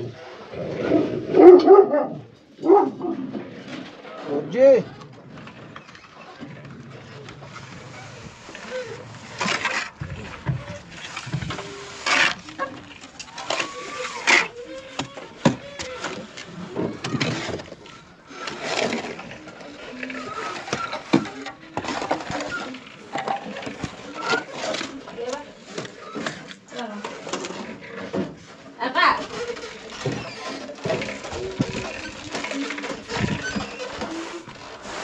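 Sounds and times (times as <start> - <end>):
trowel scraping mortar: 7.3 - 28.3, 29.1 - 35.0.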